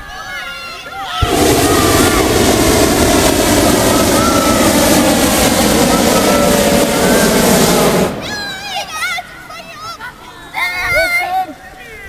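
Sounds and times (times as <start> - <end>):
propane burner roaring: 1.2 - 9.0.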